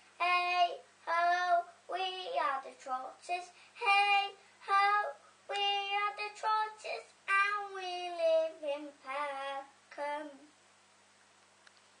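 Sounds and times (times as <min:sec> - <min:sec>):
girl singing unaccompanied: 0:00.0 - 0:10.6.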